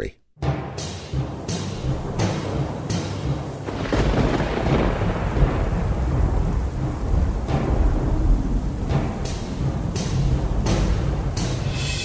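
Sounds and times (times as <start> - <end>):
rain-like hiss: 0.9 - 12.0
thunder crash and rumble: 1.8 - 11.8.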